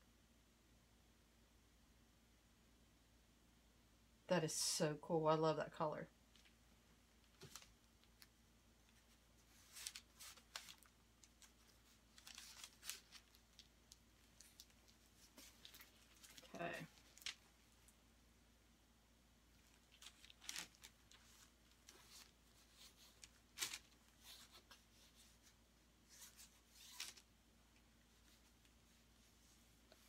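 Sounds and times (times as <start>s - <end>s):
gloved hands rustling paper: 7.2s - 17.9s, 19.6s - 30.0s.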